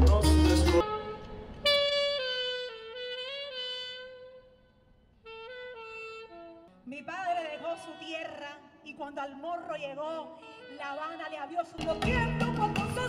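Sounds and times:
solo saxophone: 0.0 - 8.8, 10.1 - 13.0.

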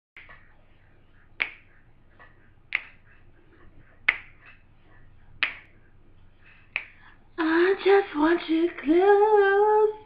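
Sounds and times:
finger snaps: 1.4 - 3.2, 4.0 - 4.6, 5.4 - 5.8, 6.7 - 7.1
woman singing: 7.4 - 10.0.

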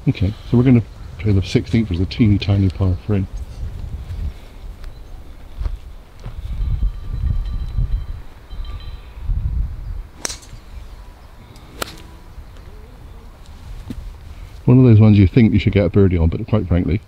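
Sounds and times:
wind rumbling on microphone: 0.0 - 16.5
golf club striking ball: 10.2 - 10.8, 11.5 - 12.6.

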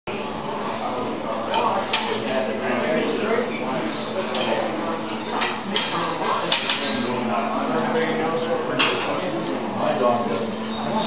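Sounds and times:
crowd chatting: 0.1 - 11.0
plates and cutlery clinking: 3.8 - 7.2, 7.8 - 9.6.

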